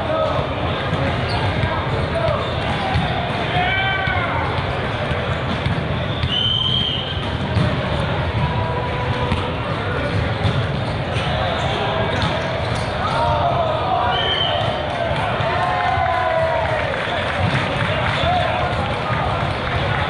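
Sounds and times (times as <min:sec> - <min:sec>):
many voices echoing: 0:00.0 - 0:20.0
volleyballs hit and bouncing: 0:00.1 - 0:20.0.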